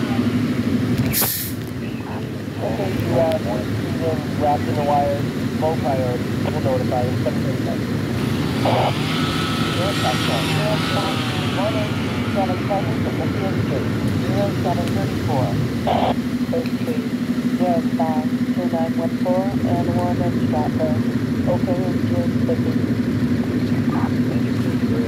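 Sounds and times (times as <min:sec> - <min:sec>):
people talking: 0:00.0 - 0:07.8, 0:08.6 - 0:22.9, 0:23.5 - 0:25.0
engine idling: 0:00.0 - 0:25.0.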